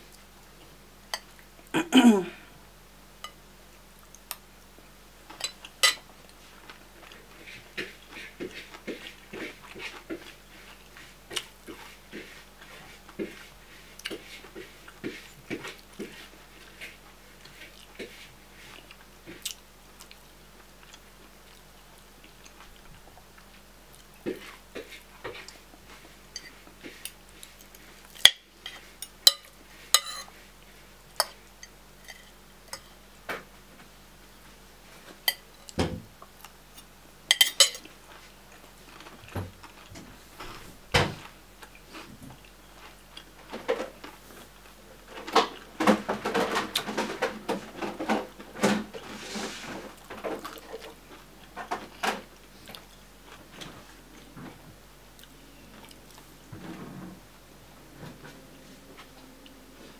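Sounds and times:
cutlery clinking on a plate: 5.4s - 6.1s, 28.2s - 30.3s, 37.3s - 37.9s.

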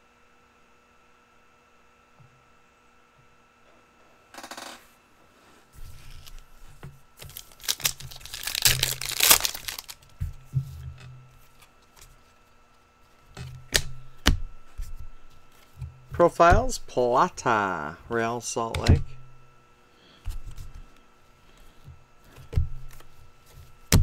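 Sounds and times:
card pack wrappers tearing: 7.2s - 10.1s
cards clicking and snapping: 7.2s - 10.1s.

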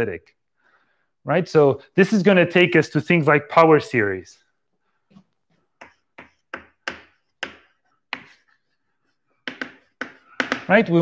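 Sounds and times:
chalk scratch: 5.5s - 10.8s
chalk tapping on blackboard: 5.8s - 10.8s.

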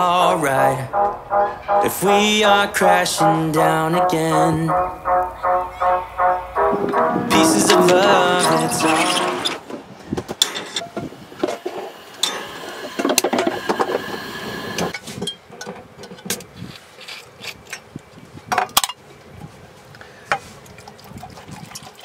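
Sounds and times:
liquid poured into a cup: 20.6s - 22.0s.

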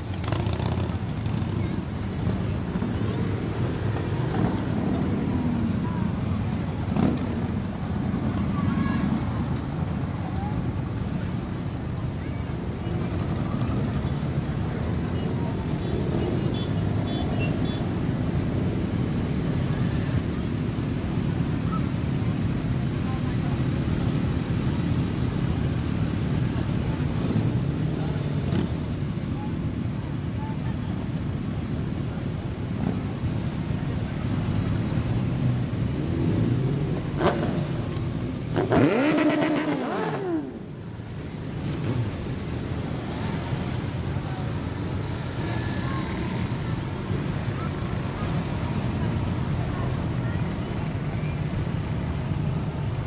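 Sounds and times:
motorcycle engines rumbling: 0.0s - 53.0s
motorcycle engine revving: 6.9s - 7.4s, 36.0s - 40.6s.

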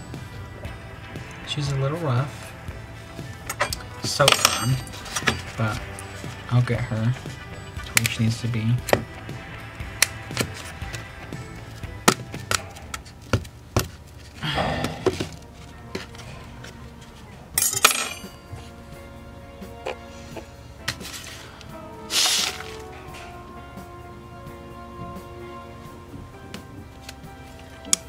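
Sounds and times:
background music: 0.0s - 28.0s.

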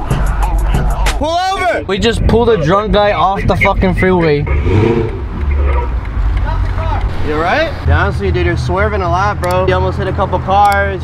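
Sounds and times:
car rumble from inside cabin: 1.4s - 9.8s.

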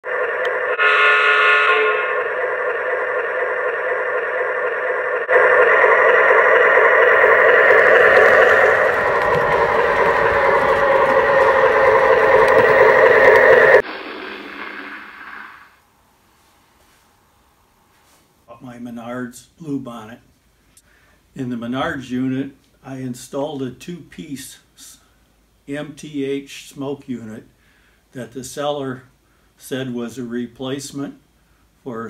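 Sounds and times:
model locomotive running sound: 0.0s - 15.8s
model locomotive horn blasts: 0.4s - 2.3s.

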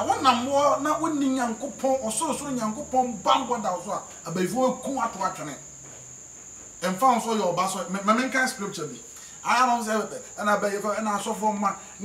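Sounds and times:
man speaking: 0.0s - 5.6s, 6.8s - 11.9s.

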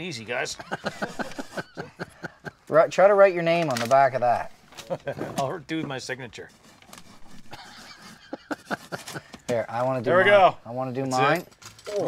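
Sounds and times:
pencil scraping on paper: 1.0s - 1.8s, 6.5s - 9.3s.

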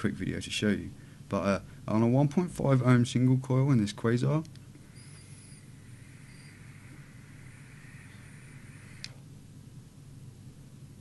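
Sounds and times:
airy hiss of vape draw: 4.8s - 9.2s
thin high whistle: 4.9s - 9.1s
atomizer click: 8.7s - 9.2s.

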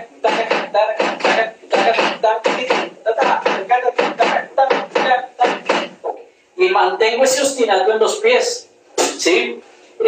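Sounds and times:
man counting aloud: 0.6s - 9.6s.

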